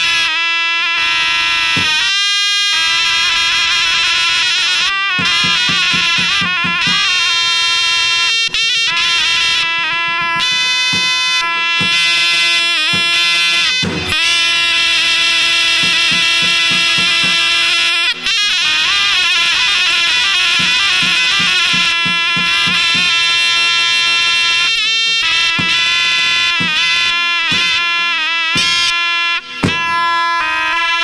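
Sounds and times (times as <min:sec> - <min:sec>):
shrill shawm playing folk tune: 0:00.0 - 0:31.0
large drum beating: 0:01.7 - 0:02.1, 0:05.1 - 0:07.3, 0:09.3 - 0:14.3, 0:15.6 - 0:17.7, 0:19.6 - 0:23.4, 0:25.5 - 0:28.9, 0:29.5 - 0:30.2
deep drum stroke: 0:29.5 - 0:30.1.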